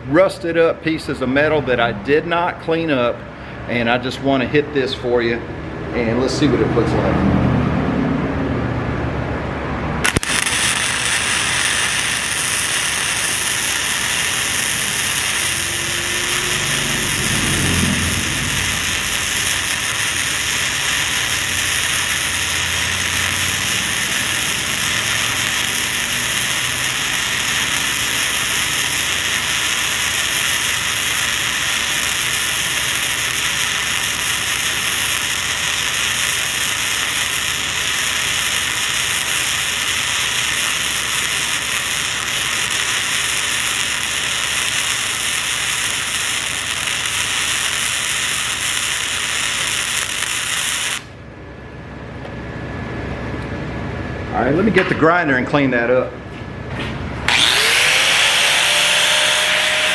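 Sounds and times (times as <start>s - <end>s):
arc welding crackling: 10.0s - 51.2s, 57.3s - 59.9s.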